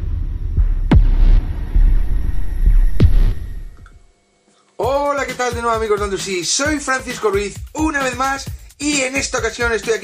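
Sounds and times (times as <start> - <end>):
deep electronic bass hits: 0.0 - 4.1
falling electronic sweep: 0.0 - 4.1
low pulsing rumble: 0.0 - 4.1.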